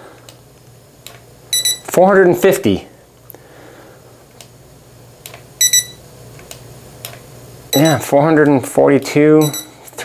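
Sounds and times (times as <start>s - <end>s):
low steady hum: 0.0s - 10.0s
thermometer beeping: 1.5s - 1.9s, 5.6s - 6.0s, 7.7s - 8.1s, 9.4s - 9.8s.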